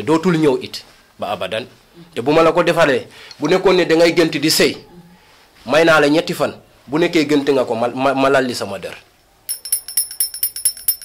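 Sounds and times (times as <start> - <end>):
metal jingles shaken: 9.5 - 11.0.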